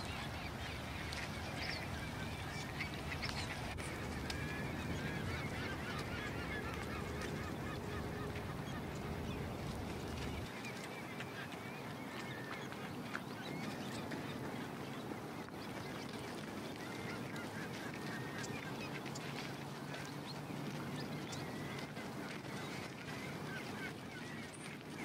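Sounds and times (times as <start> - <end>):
flock of waterbirds calling: 0.0 - 25.0
low background rumble: 0.2 - 10.5.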